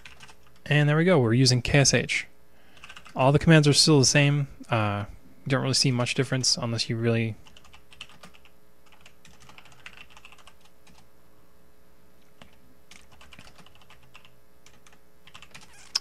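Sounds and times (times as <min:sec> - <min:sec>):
keyboard typing: 0:00.0 - 0:00.6, 0:02.8 - 0:03.2, 0:07.4 - 0:11.1, 0:12.3 - 0:16.0
faint steady hum: 0:00.0 - 0:16.0.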